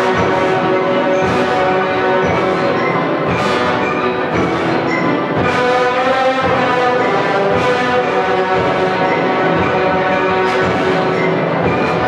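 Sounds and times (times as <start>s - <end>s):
orchestra playing loud chords: 0.0s - 12.0s.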